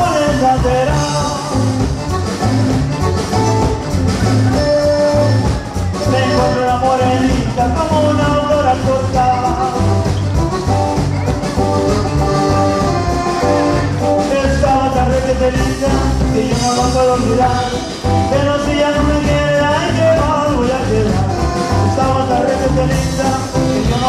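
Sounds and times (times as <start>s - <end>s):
latin dance-band music: 0.0s - 24.0s.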